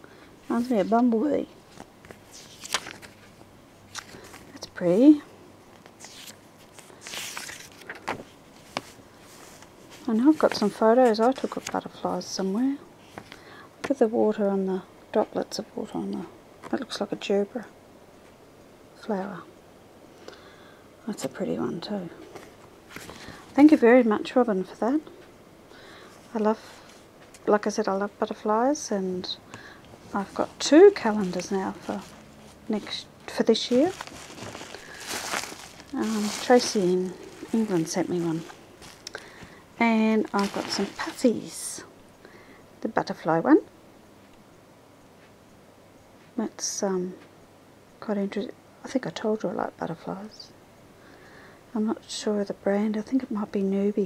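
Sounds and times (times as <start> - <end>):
calendar page rustling swish: 2.1 - 3.3, 6.0 - 10.6, 33.6 - 39.1, 40.2 - 41.4
plastic bag crinkling: 30.0 - 41.8.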